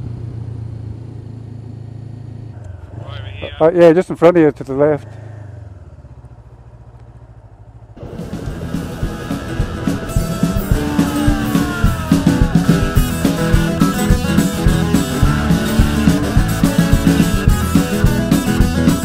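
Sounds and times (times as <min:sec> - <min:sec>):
motorcycle engine running: 0:00.0 - 0:19.0
rock music with guitar and drums: 0:08.0 - 0:19.0.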